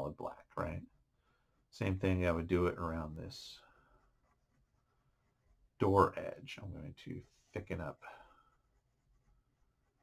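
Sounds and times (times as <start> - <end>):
pen scratching on paper: 3.9 - 6.1, 8.5 - 10.0.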